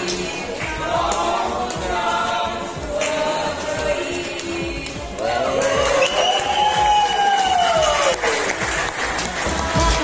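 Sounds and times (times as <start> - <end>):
group of people singing: 0.0 - 6.7, 9.1 - 10.0.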